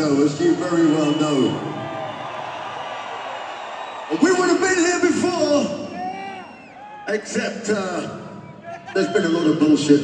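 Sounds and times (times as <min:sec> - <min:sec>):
crowd cheering: 0:00.0 - 0:09.9.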